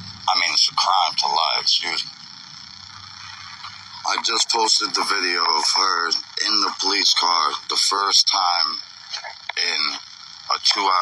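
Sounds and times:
faint high whine: 0.0s - 11.0s
low hum: 0.0s - 11.0s.

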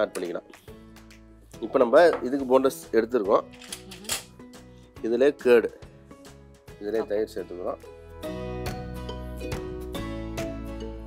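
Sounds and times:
background music: 0.0s - 11.0s
person talking: 3.7s - 4.3s, 6.8s - 7.7s.

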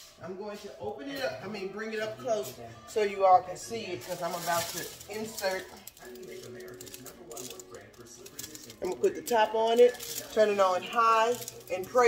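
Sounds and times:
plastic liner crinkling: 4.0s - 12.0s
woman speaking: 8.8s - 12.0s.

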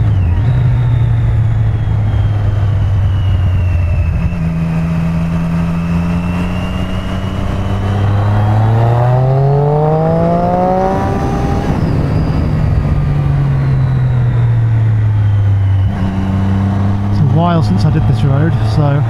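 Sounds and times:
motorcycle engine accelerating: 0.0s - 19.0s
wind rush: 0.0s - 19.0s.

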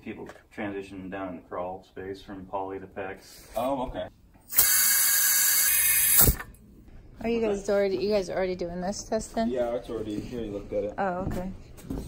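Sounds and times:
compressed air hissing: 4.5s - 6.5s.

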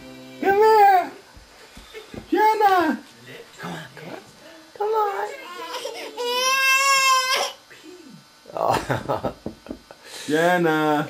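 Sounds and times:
baby whining: 5.1s - 7.6s.

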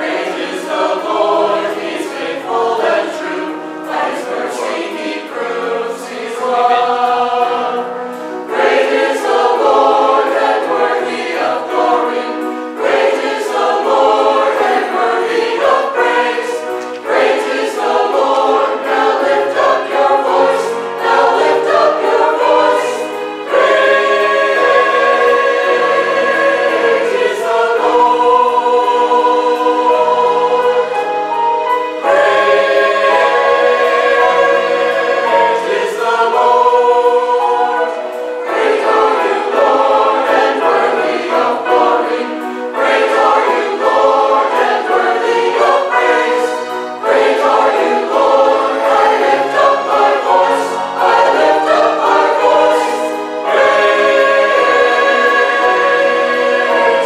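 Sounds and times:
mixed choir singing in parts: 0.0s - 57.0s.

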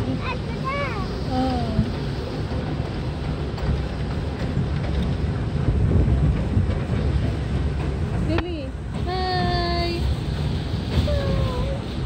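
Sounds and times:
miniature train rumbling: 0.0s - 12.0s.

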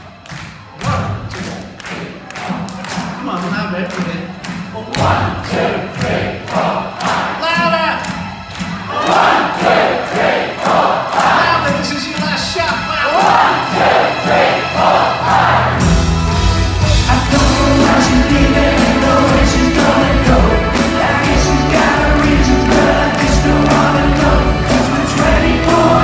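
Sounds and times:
steady drum beat: 0.0s - 26.0s
crowd singing a chorus: 5.0s - 7.4s, 8.7s - 11.4s, 13.1s - 16.2s, 16.9s - 26.0s
rock band playing: 6.8s - 26.0s.

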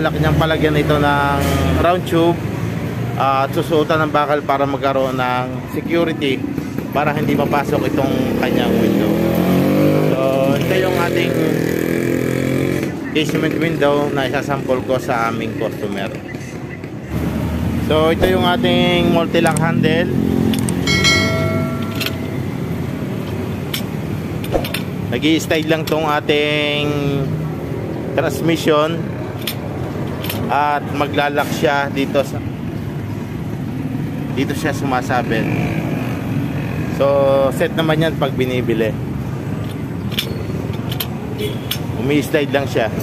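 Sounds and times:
low street rumble: 0.0s - 43.0s.

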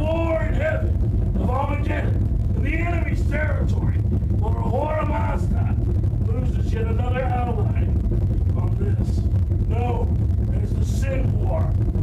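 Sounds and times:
muffled voice speaking: 0.0s - 11.8s
low rumble: 0.0s - 12.0s.

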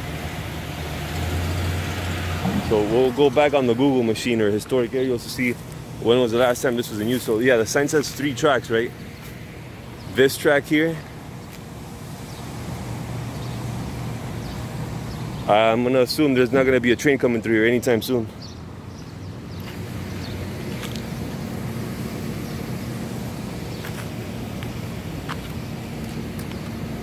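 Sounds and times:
traffic engine rumble: 0.0s - 27.0s.

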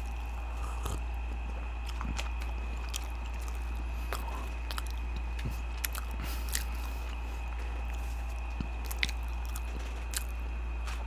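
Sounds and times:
chewing with wet mouth clicks: 0.0s - 10.4s
low electrical hum: 0.0s - 11.0s.

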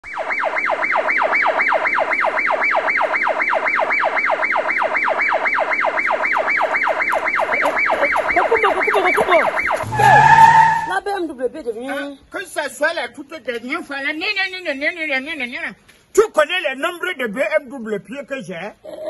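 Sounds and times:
siren yelping: 0.0s - 10.9s.

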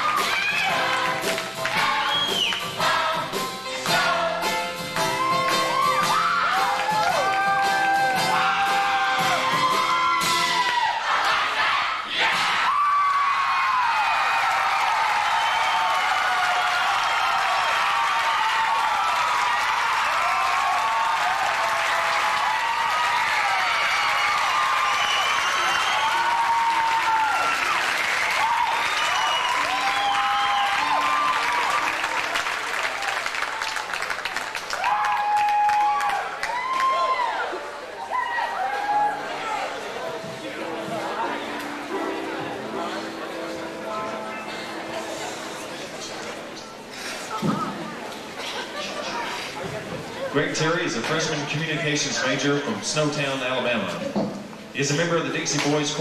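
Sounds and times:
crowd whooping: 0.0s - 1.0s, 5.0s - 41.4s
audience applause and cheering: 0.0s - 52.8s.

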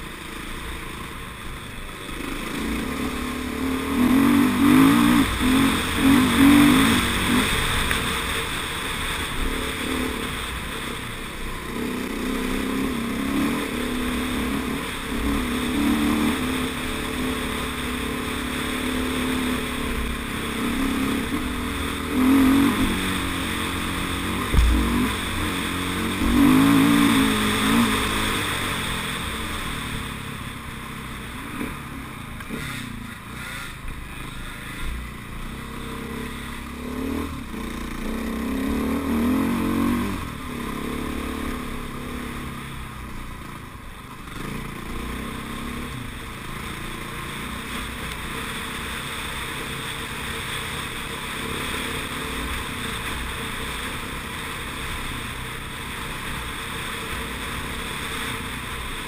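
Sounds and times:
dirt bike engine revving: 2.0s - 43.2s
sharp thump: 24.4s - 25.1s.

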